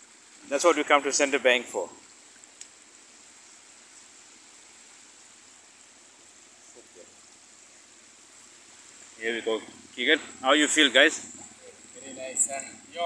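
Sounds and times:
faint outdoor background hiss: 0.0 - 13.0
thin high whine: 9.2 - 13.0.

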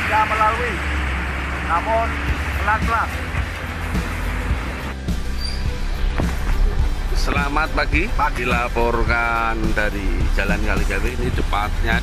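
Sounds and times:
low engine rumble: 0.0 - 12.0
music playing: 1.8 - 12.0.

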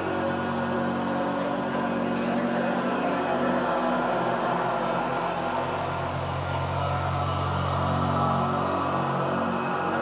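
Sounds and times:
low droning bass: 0.0 - 10.0
sustained synth pads: 0.0 - 10.0.

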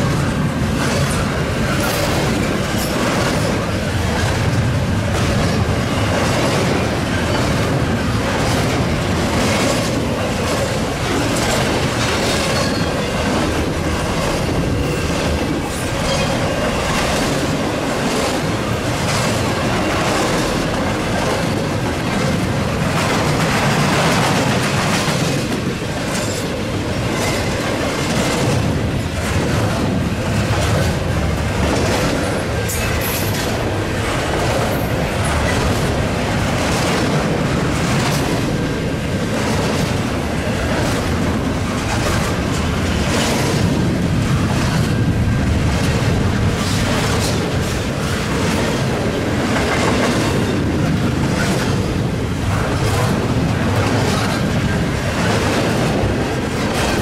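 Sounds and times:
freight train wheels rumbling: 0.0 - 57.0
train wheel clicks: 0.0 - 57.0.

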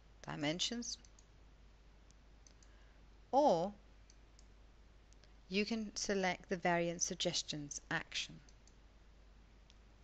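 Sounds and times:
faint computer mouse clicks: 1.0 - 1.3, 2.1 - 2.8.

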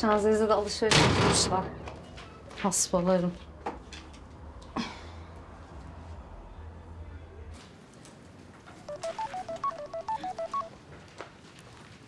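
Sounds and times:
mobile phone electronic beeps: 8.9 - 10.7.

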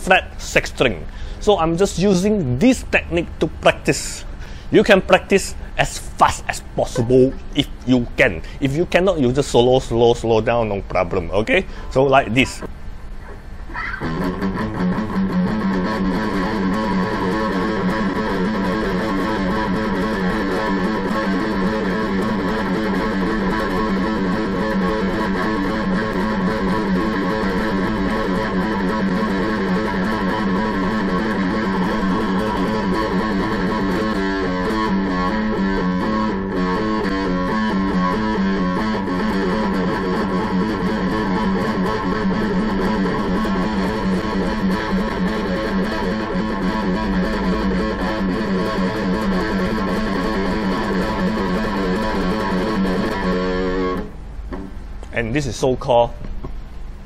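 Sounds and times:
electric guitar fast picked notes: 11.6 - 54.2.

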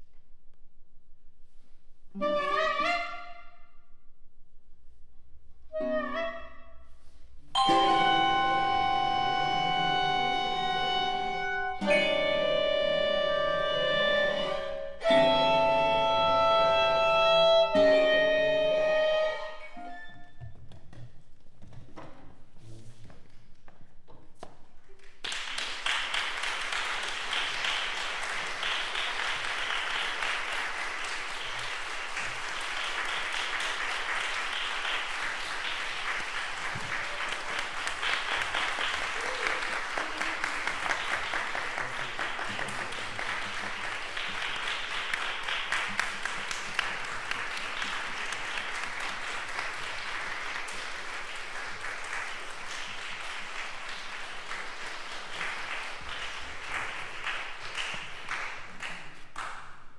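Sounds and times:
audience applauding: 25.2 - 59.6.

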